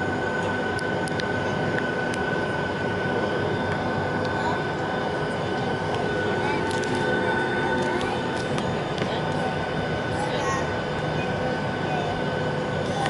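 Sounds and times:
jet engine rumble and whine: 0.0 - 13.0.

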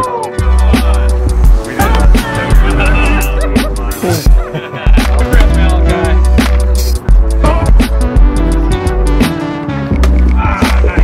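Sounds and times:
bass-heavy beat music: 0.0 - 11.0.

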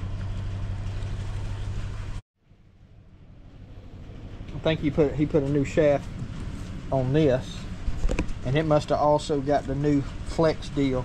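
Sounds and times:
low rumble with hiss: 0.0 - 11.0.

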